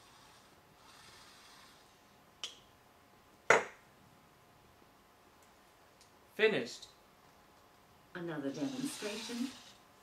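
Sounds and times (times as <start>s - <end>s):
drink can knocking on wooden table: 3.5s - 3.8s.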